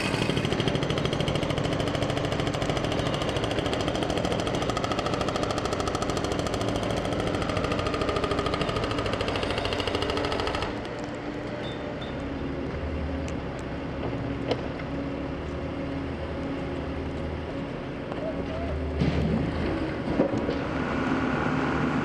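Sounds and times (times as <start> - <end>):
hydraulic breaker hammering road: 0.0 - 11.1.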